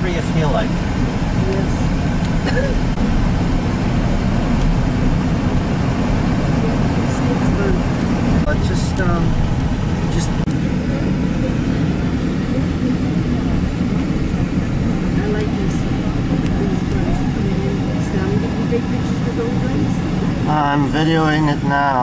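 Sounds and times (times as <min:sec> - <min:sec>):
car road and engine noise: 0:00.0 - 0:22.0
faint voices: 0:10.0 - 0:22.0.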